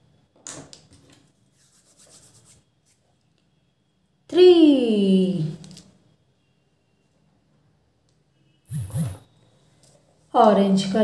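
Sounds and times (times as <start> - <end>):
hand rubbing paper: 1.5 - 3.0, 8.7 - 9.2.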